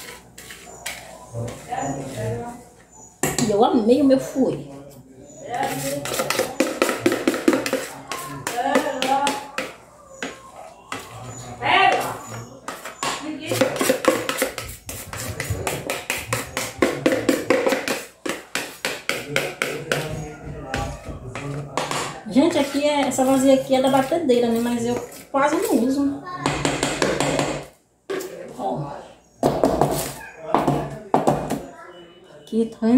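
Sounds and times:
spoon scraping metal pot: 0.0s - 3.6s, 5.4s - 20.2s, 21.4s - 26.0s
voices in background: 0.0s - 32.9s.

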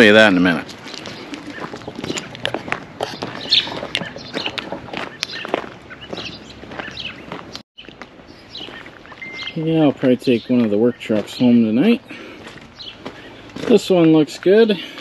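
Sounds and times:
birds chirping: 0.0s - 15.0s
footsteps crunching on gravel: 0.0s - 15.0s.

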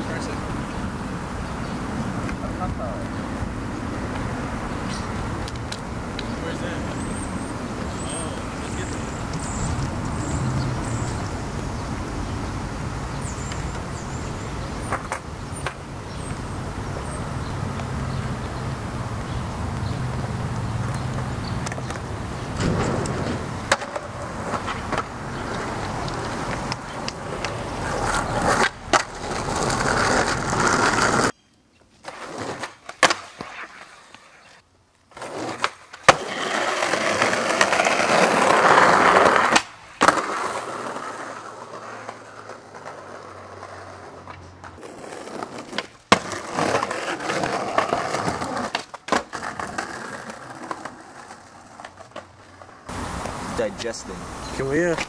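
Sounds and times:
skateboard wheels rolling on concrete: 0.0s - 55.0s
skateboard clacking on ground: 4.9s - 11.6s, 13.1s - 18.6s, 20.9s - 31.4s, 32.0s - 34.4s, 35.1s - 53.3s.

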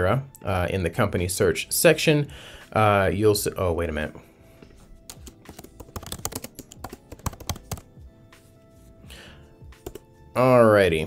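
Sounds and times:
computer keyboard typing: 5.1s - 7.9s, 9.8s - 10.1s.

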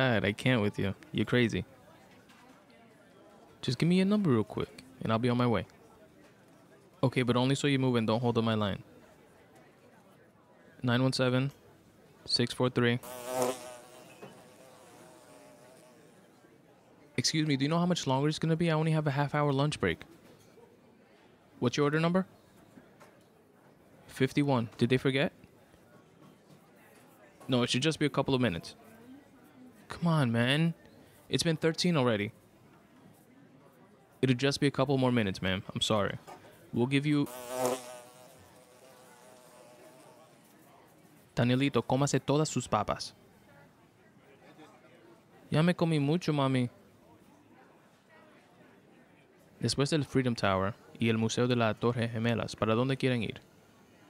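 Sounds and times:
fly buzzing: 13.0s - 16.1s, 37.2s - 40.3s.

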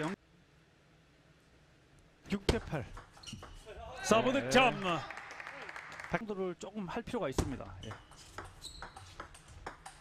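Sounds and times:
table tennis ball bouncing: 2.5s - 3.6s, 7.4s - 10.0s.

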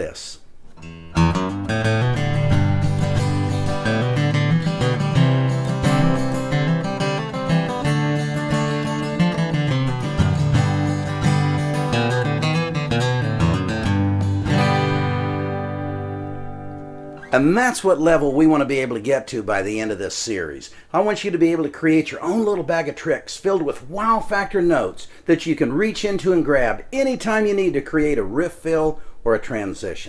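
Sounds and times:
acoustic guitar playing: 0.5s - 19.1s.

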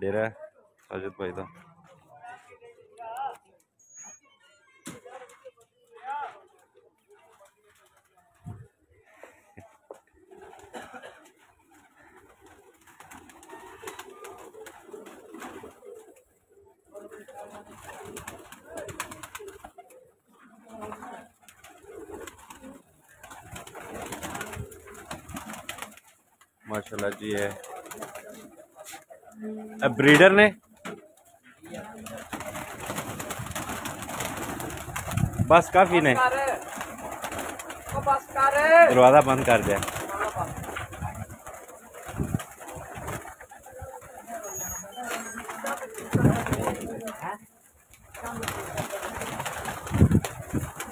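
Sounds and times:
wings flapping: 9.6s - 50.9s
pigeons cooing: 10.1s - 26.1s, 27.0s - 34.9s, 39.6s - 47.2s.

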